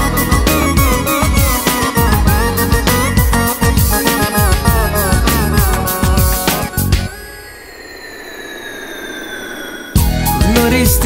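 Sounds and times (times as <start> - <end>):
electronic tone sliding down: 0.0 - 11.0
noise sweep: 3.0 - 11.0.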